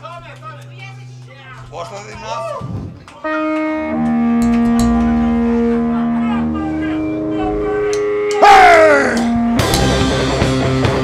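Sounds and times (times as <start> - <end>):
note sliding down in pitch: 2.7 - 9.8
rock band music: 3.2 - 11.0.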